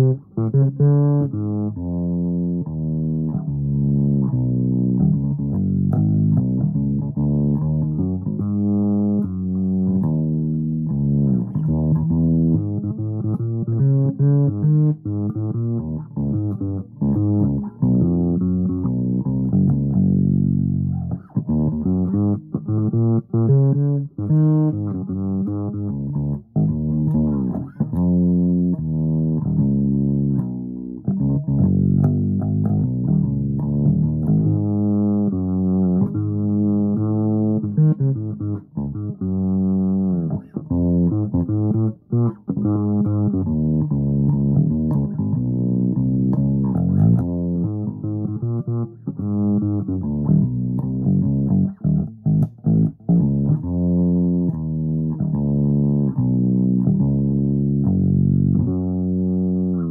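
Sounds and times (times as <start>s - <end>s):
fretless bass plucked notes: 0.0s - 59.9s.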